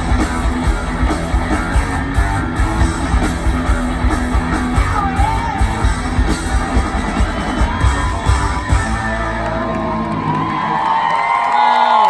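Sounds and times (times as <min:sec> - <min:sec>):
live rock band playing: 0:00.0 - 0:10.8
crowd whooping and yelling: 0:03.5 - 0:12.0.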